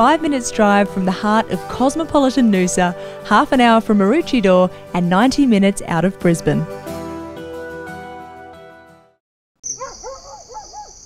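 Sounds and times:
background music: 0:00.0 - 0:09.2
animal calls: 0:09.6 - 0:11.0
crickets chirring: 0:09.6 - 0:11.0.

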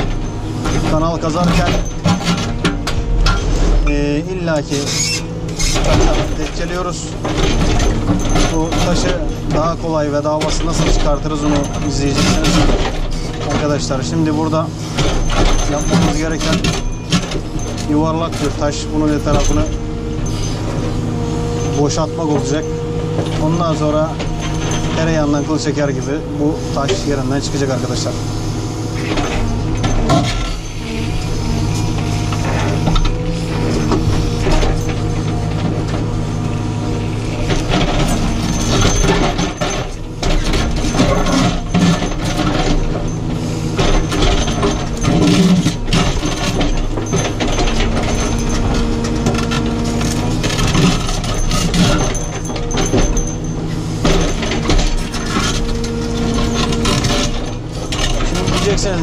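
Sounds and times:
diesel engine and hydraulics: 0:00.0 - 0:59.0.

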